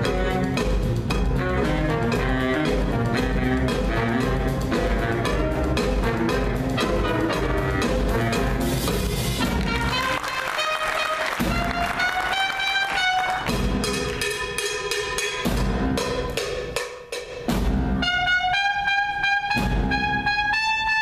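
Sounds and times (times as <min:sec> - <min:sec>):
trumpet solo: 0:00.0 - 0:14.0, 0:18.0 - 0:21.0
drum kit: 0:00.0 - 0:21.0
jazz big band playing: 0:00.0 - 0:21.0.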